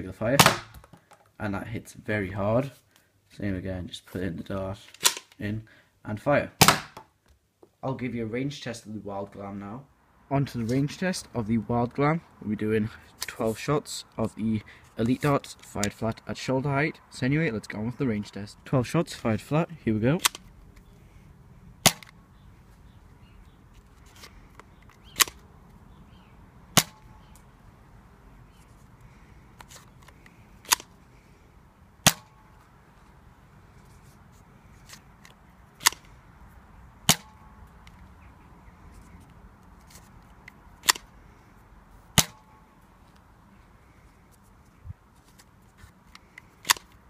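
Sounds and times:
darts being loaded clicks: 0:24.1 - 0:25.4, 0:46.1 - 0:47.0.

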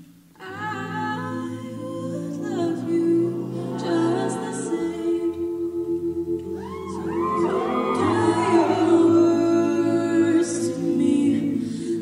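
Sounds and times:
a cappella group singing: 0:00.4 - 0:12.0.

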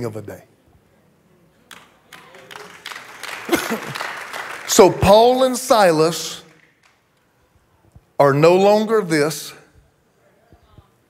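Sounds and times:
faint applause: 0:01.7 - 0:05.6.

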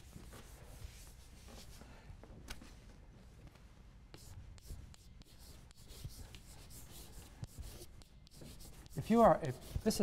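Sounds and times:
chalk scratching on blackboard: 0:00.0 - 0:01.8, 0:04.1 - 0:10.0
chalk tapping: 0:04.1 - 0:10.0.

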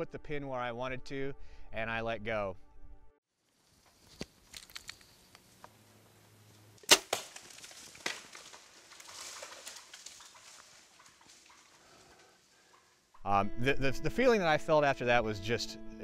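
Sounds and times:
bow string crack: 0:03.6 - 0:05.8.

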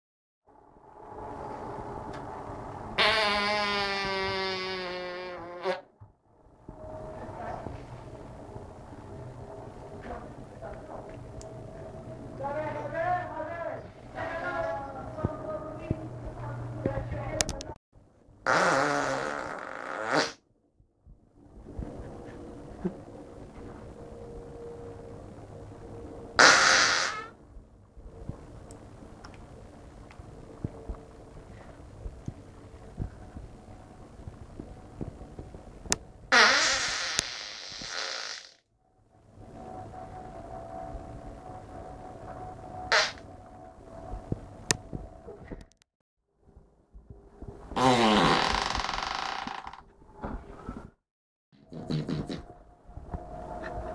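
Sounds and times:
long buzzing fart: 0:03.0 - 0:05.9, 0:18.4 - 0:20.4, 0:26.4 - 0:27.4, 0:36.3 - 0:38.6, 0:42.9 - 0:43.2, 0:47.8 - 0:49.8, 0:51.6 - 0:52.5.

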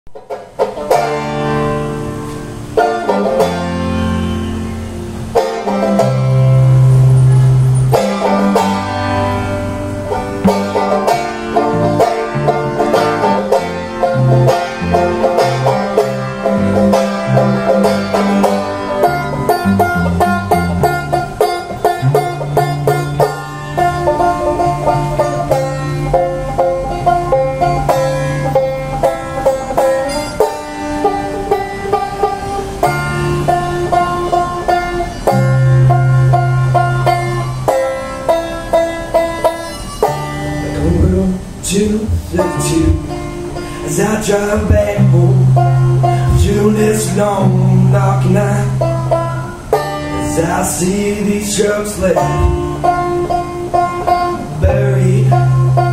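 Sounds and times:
banjo picking a melody: 0:00.1 - 0:55.9
strummed acoustic guitar: 0:00.1 - 0:55.9.

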